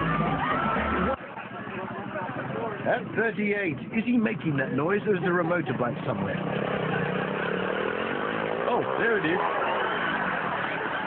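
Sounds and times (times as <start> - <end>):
small motorbike engine: 6.0 - 11.0.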